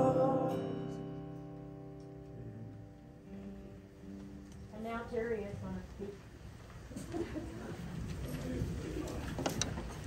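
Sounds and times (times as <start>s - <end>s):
murmur of low voices: 2.4s - 10.0s.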